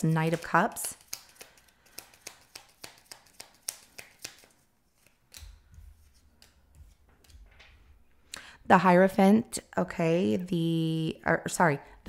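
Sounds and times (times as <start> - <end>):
cards being shuffled: 0.0 - 7.8.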